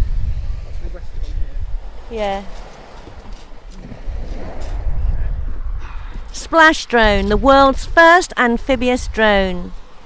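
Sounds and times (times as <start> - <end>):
wind buffeting microphone: 0.0 - 10.0
surf washing on shingle: 1.1 - 5.2.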